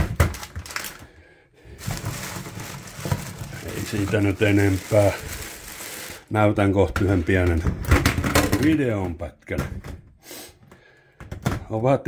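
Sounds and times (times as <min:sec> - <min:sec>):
plastic bag rustling: 0:00.0 - 0:07.7.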